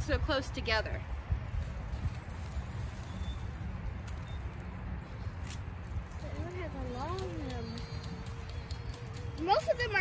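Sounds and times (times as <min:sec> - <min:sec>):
rustling of soil and dry leaves: 0:00.0 - 0:10.0
wind rumble on microphone: 0:00.0 - 0:10.0.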